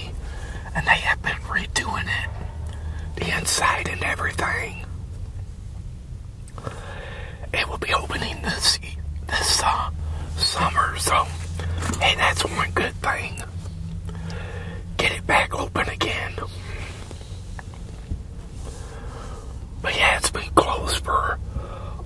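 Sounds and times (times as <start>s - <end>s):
person whispering: 0.0s - 4.9s, 7.4s - 11.4s, 12.0s - 13.5s, 15.0s - 16.7s, 19.8s - 21.4s
steady low hum: 0.0s - 22.0s.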